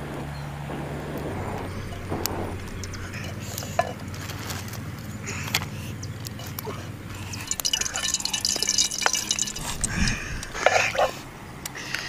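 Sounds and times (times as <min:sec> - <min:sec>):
oil crackling and spitting: 0:00.0 - 0:12.0.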